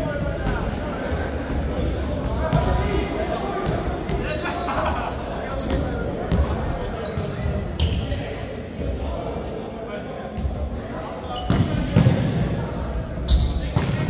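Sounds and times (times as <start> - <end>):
murmur of players' voices: 0.0 - 14.0
sneakers squeaking on wooden floor: 2.2 - 2.8, 4.2 - 8.6, 11.4 - 13.9.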